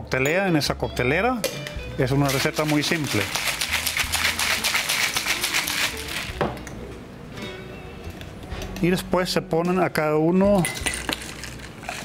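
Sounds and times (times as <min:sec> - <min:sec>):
ice rattling in cocktail shaker: 0:02.1 - 0:06.4, 0:10.6 - 0:12.0.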